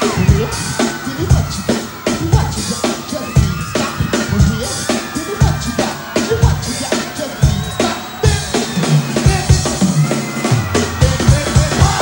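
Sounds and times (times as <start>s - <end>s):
drum kit playing a groove: 0.0s - 12.0s.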